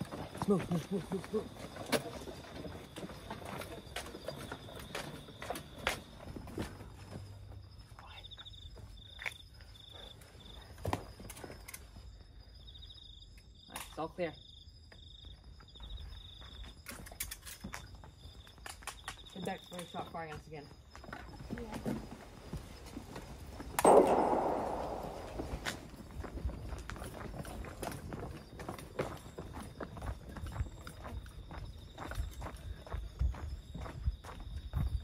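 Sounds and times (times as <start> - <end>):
crickets chirping: 0.0 - 35.0
footsteps on a path: 26.4 - 35.0.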